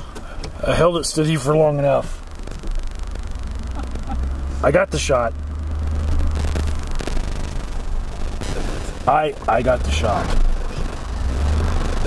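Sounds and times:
car road noise rumble: 0.0s - 12.0s.

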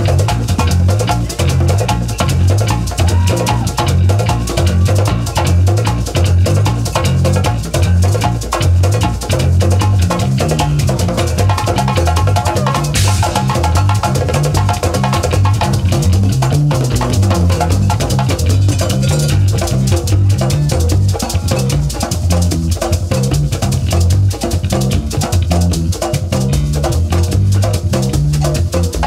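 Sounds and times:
congas and hand drums: 0.0s - 29.0s
electric bass line: 0.0s - 29.0s.

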